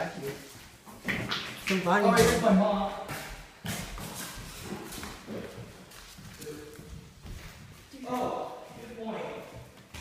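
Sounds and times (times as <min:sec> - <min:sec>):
footsteps on debris-covered floor: 0:00.1 - 0:10.0.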